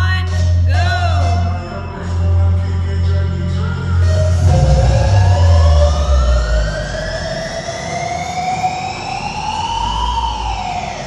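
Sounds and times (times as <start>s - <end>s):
loud music with heavy bass beat: 0.0s - 11.0s
siren-like wail: 3.4s - 11.0s.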